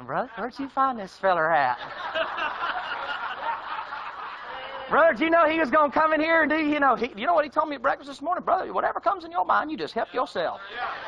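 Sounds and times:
audience laughing: 1.7 - 4.9, 10.4 - 11.0.

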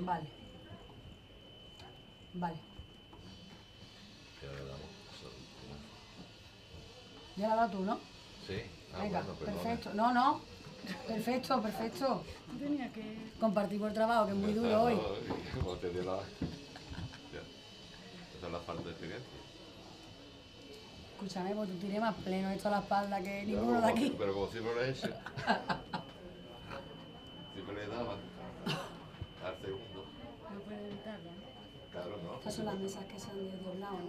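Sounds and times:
faint murmuring voices: 0.0 - 34.0.

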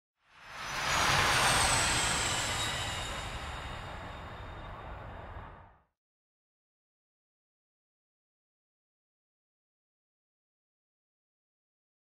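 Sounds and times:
jet aircraft passing: 0.6 - 5.6.

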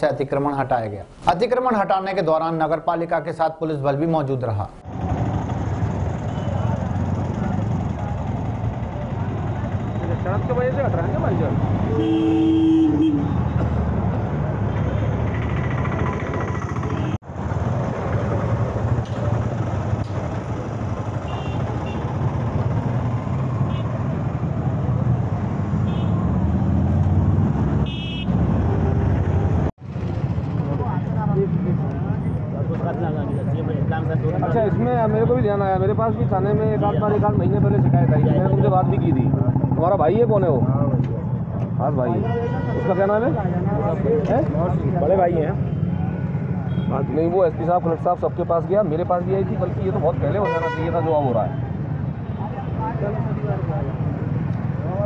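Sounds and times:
vehicle horn: 11.9 - 13.6, 21.2 - 22.1, 23.7 - 23.9, 25.8 - 26.3, 27.8 - 28.4, 42.2 - 43.2, 50.4 - 51.2.

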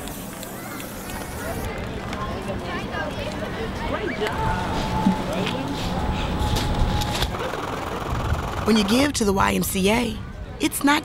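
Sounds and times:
children chattering: 0.0 - 9.1.

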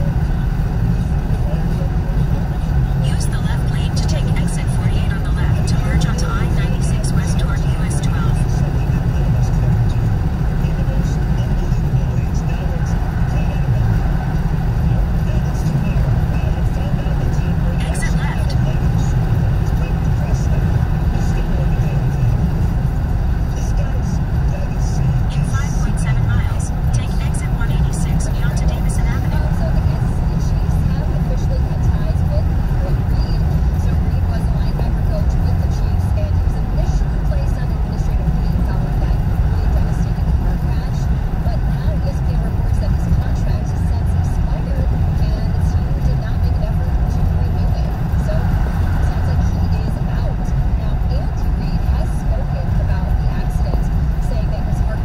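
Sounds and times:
car road and engine rumble: 0.0 - 55.0.

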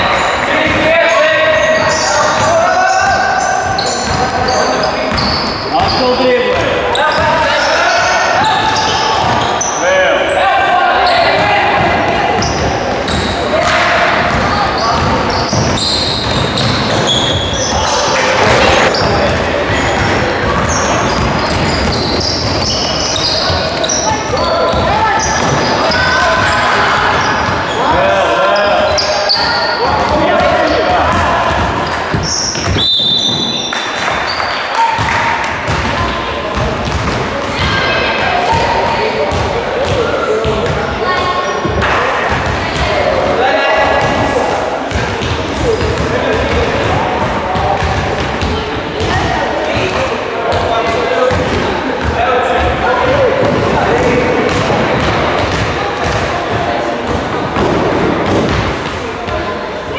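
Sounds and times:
sneakers squeaking on wooden court: 0.0 - 10.4, 11.0 - 59.9
players calling in a gym: 0.0 - 59.9
basketball bouncing: 1.8 - 7.4, 8.4 - 9.6, 11.4 - 27.8, 28.9 - 33.6, 35.0 - 40.8, 41.7 - 59.4
referee's whistle: 32.2 - 34.6.

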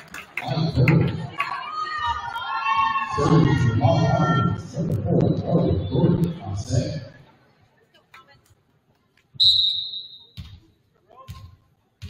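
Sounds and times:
referee's whistle: 9.4 - 10.4.

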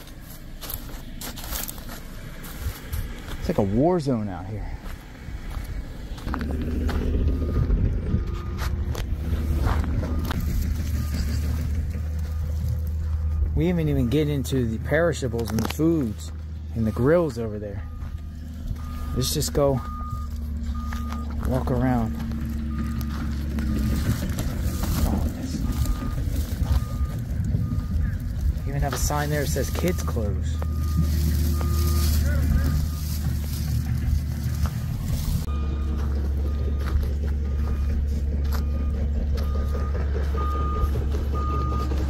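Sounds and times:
steady low rumble: 0.0 - 42.0
reversing alarm beeping: 6.4 - 42.0.

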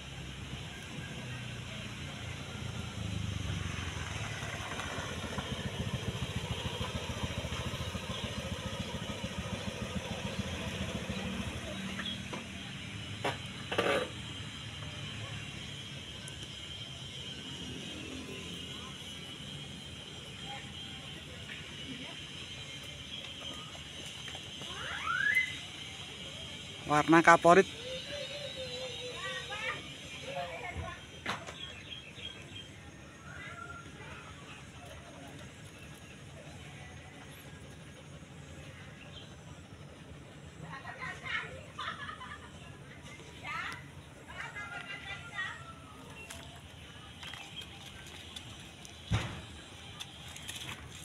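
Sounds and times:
vehicle engine running: 0.0 - 51.0.

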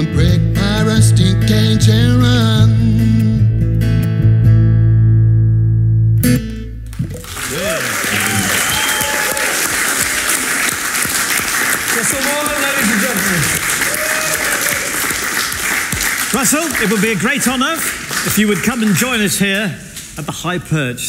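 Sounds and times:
acoustic guitar and bass chord: 0.0 - 7.2
audience applauding and cheering: 6.8 - 19.7.

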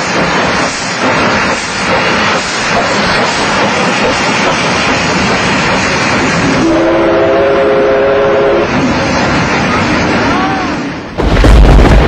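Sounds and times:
train rushing: 0.0 - 12.0
train horn chord: 6.5 - 8.7.

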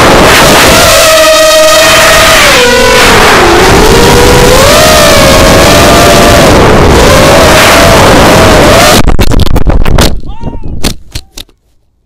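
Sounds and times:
quadcopter motors whining: 0.0 - 9.0
wind noise: 0.0 - 11.5.

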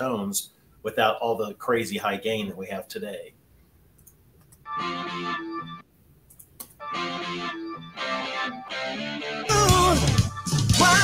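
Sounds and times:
sustained organ-like chords: 4.7 - 5.8, 6.8 - 11.0.

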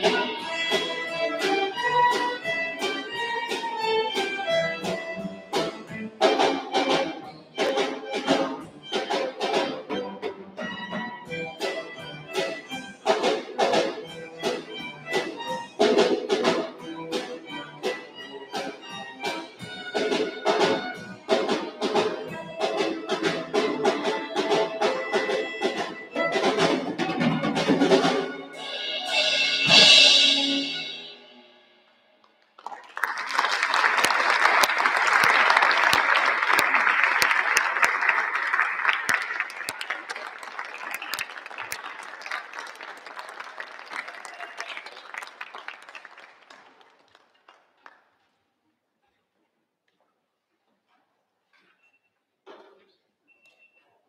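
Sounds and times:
string orchestra playing: 0.0 - 31.6
audience applauding: 32.4 - 48.2.

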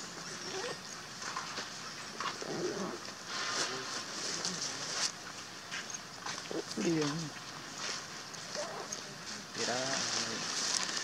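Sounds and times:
high background hiss: 0.0 - 11.0.

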